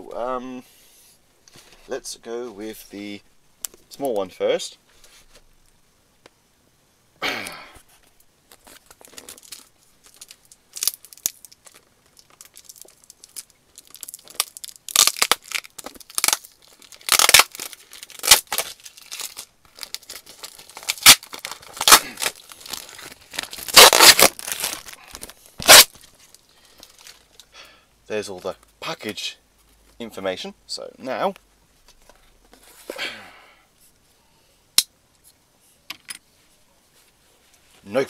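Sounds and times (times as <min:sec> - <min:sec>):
cardboard parcel tearing: 0:10.8 - 0:26.1.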